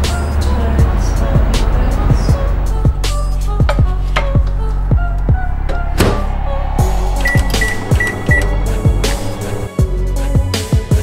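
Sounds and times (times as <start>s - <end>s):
background music with drum beat: 2.9s - 5.3s, 6.8s - 11.0s.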